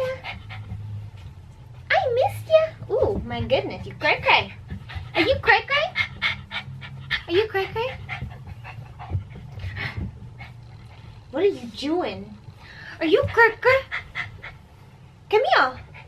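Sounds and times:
dog panting: 0.0s - 16.0s.

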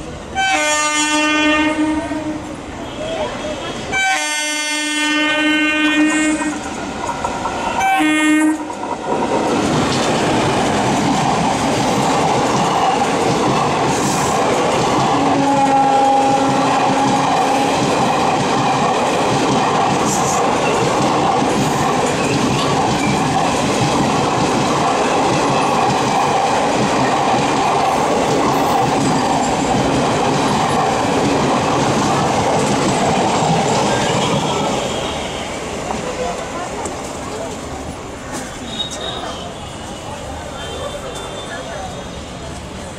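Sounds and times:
train passing with wheel clatter: 0.0s - 42.9s
train horn blasts: 0.4s - 3.1s, 3.9s - 6.6s, 7.7s - 8.7s, 15.2s - 17.7s, 34.2s - 35.6s.

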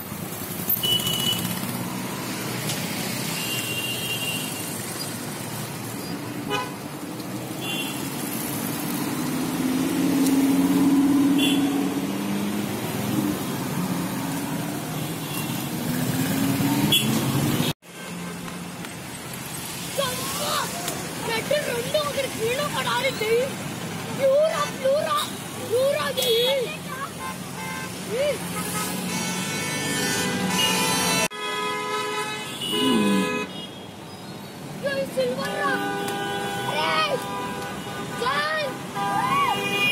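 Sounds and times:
car horn toots: 28.6s - 33.8s.

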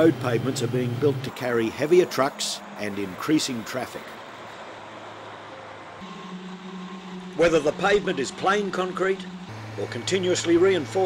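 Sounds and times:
low engine drone: 0.0s - 4.2s, 5.8s - 11.0s
highway traffic: 0.0s - 11.0s
low hum: 6.0s - 11.0s.

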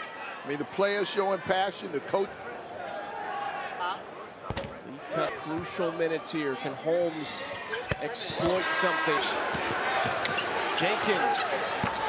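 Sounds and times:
faint crowd murmur: 0.0s - 12.0s.

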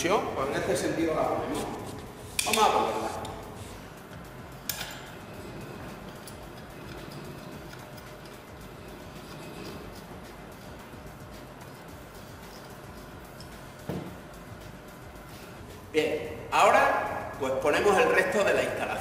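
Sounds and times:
steady low background hum: 0.0s - 19.0s.

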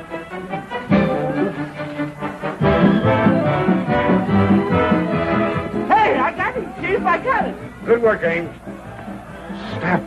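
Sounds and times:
voices talking: 5.0s - 10.0s.

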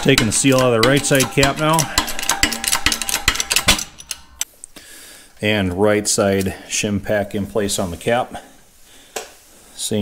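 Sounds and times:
heavy knocks: 0.0s - 4.0s
metallic clicks: 0.0s - 4.6s.

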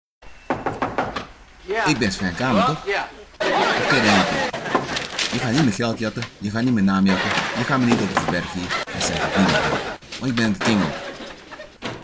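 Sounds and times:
knocks on a door: 0.5s - 1.3s
man speaking: 1.6s - 4.5s, 5.3s - 11.0s.

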